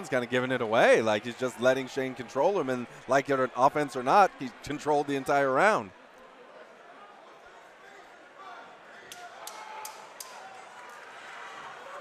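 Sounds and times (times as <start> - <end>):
faint crowd shouting: 0.0 - 12.0.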